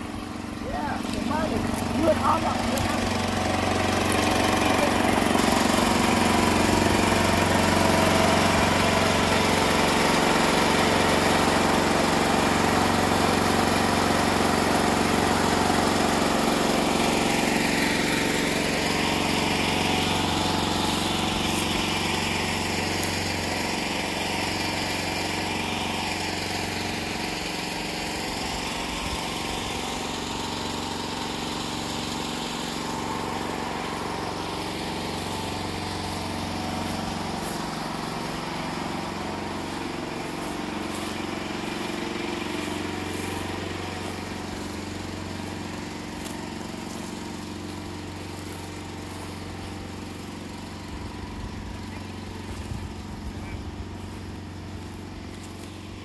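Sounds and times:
small generator engine running: 0.0 - 56.0.

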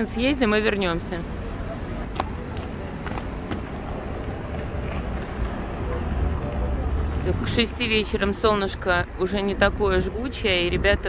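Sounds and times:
low rumble of street noise: 0.0 - 11.0.

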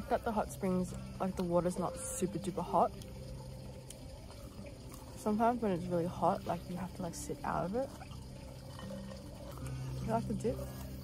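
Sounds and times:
steady low hum: 0.0 - 11.0
water trickling: 0.0 - 11.0.

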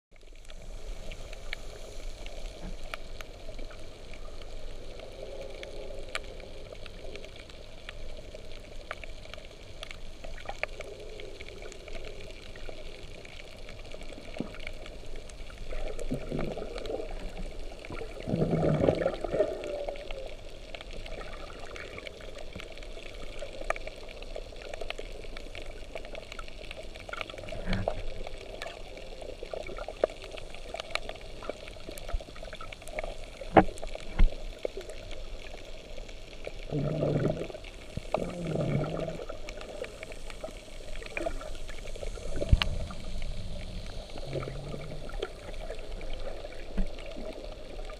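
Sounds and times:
muffled underwater water wash: 0.1 - 47.9
muffled water surges: 0.1 - 47.9.

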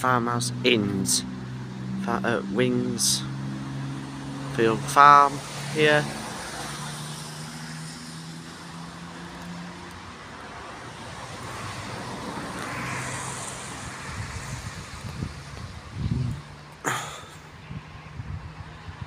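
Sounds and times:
road traffic hum: 0.0 - 19.0
vehicle passing: 0.2 - 19.0
low rumbling: 13.8 - 16.5.

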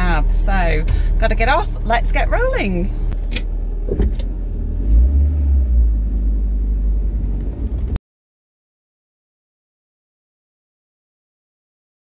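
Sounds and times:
van engine starting and idling: 0.0 - 8.0.

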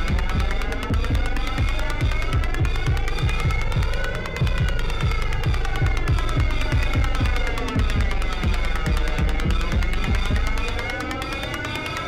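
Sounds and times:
fast hi-hat ticks: 0.0 - 12.0.

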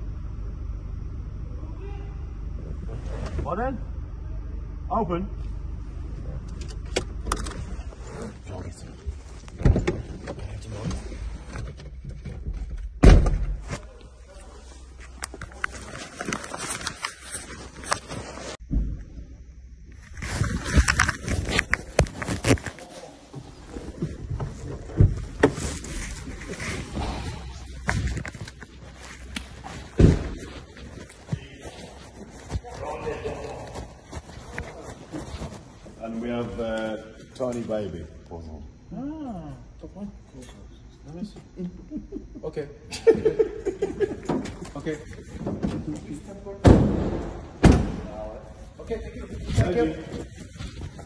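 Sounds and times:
heavy thump: 29.9 - 30.5, 46.6 - 48.1.

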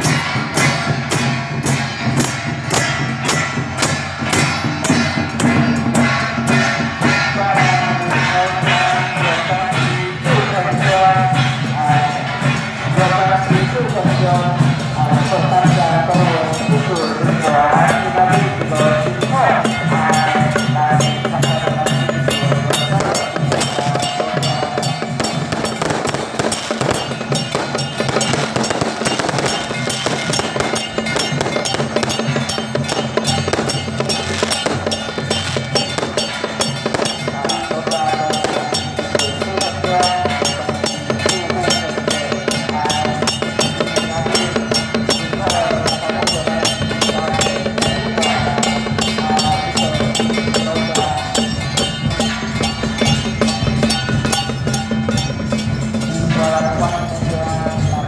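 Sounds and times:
firecrackers crackling: 0.0 - 57.9
rapid percussion: 0.0 - 58.0
high wavering melody: 14.6 - 58.0.

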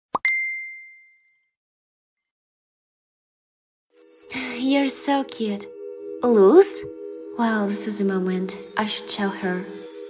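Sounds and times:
bright ringing ding: 0.2 - 1.5.

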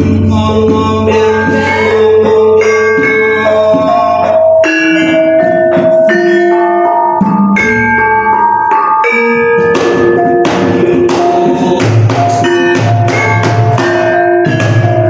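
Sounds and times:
hand drum strokes: 0.0 - 15.0
metallophones ringing melody: 0.0 - 15.0.

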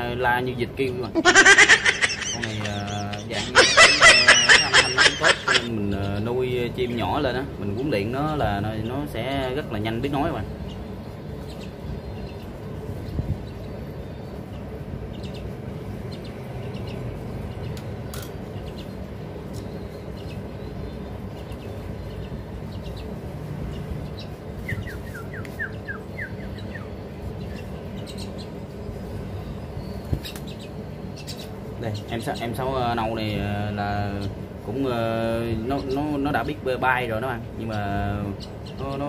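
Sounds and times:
steady low background noise: 0.0 - 39.0
young mynas chirping: 0.7 - 39.0.

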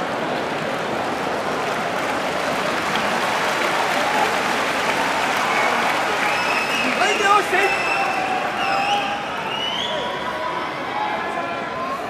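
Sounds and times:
crowd applauding: 0.0 - 10.3
voices in crowd: 0.0 - 12.0.

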